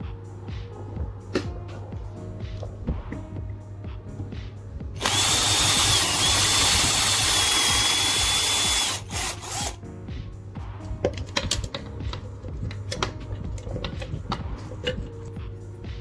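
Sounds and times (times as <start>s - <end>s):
cordless drill boring into wood: 5.0s - 9.8s.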